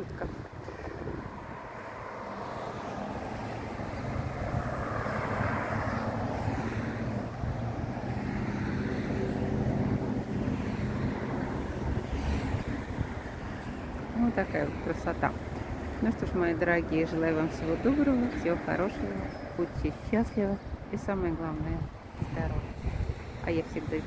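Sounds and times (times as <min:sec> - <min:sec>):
wind on microphone: 0:00.0 - 0:14.4, 0:19.0 - 0:24.0
cars passing: 0:00.0 - 0:24.0
engine hum: 0:00.0 - 0:24.0.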